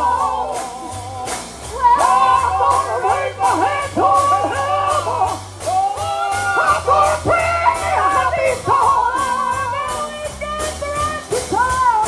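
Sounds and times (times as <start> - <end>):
bass line: 0.0 - 12.0
drum beat: 0.0 - 12.0.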